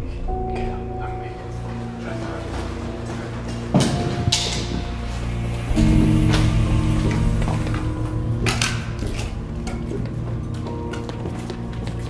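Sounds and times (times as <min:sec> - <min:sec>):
background music with low notes: 0:00.0 - 0:12.0.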